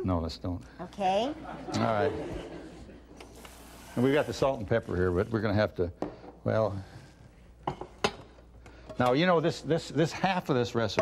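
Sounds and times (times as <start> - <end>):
dishes and utensils clinking: 7.6 - 9.2.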